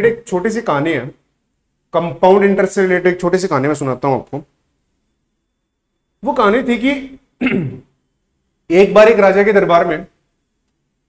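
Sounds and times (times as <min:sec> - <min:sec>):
man clearing his throat: 0:07.4 - 0:07.9.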